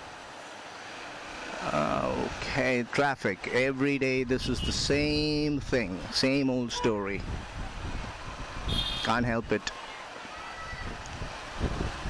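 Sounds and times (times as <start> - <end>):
surrounding traffic: 0.0 - 12.0
wind noise on microphone: 4.4 - 5.8, 6.9 - 9.1, 10.6 - 12.0.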